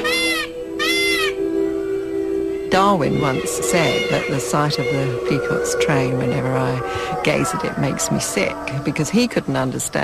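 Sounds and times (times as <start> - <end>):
peacock calling: 0.0 - 10.0.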